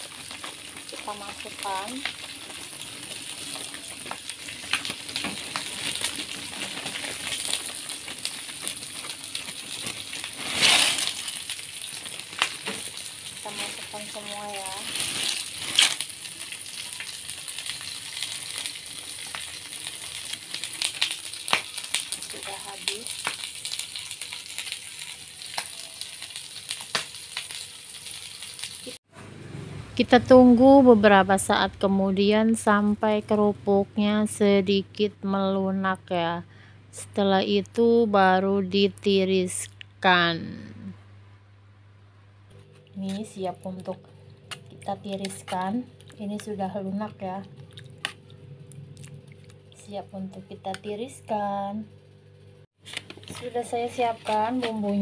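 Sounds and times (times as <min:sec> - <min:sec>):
hot water bubbling and hissing: 0:00.0 - 0:13.6.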